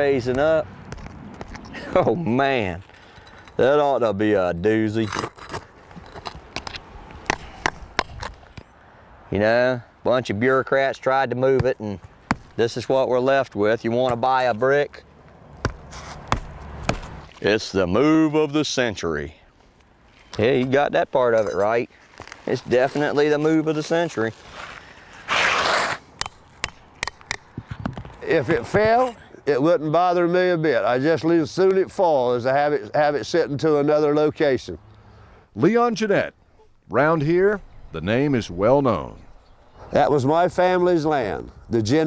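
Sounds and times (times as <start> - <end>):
light scraping of shingles: 15.8 - 17.8, 19.5 - 26.1.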